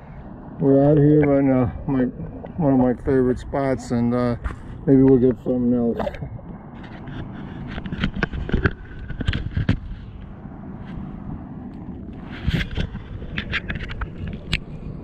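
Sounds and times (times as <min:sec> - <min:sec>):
water: 0:00.0 - 0:15.0
wind: 0:00.0 - 0:15.0.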